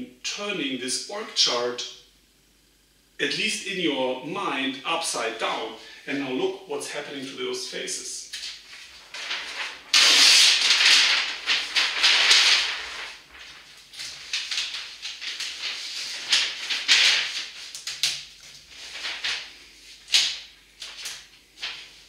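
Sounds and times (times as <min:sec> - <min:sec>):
paper sheet rustling: 0:08.2 - 0:22.0.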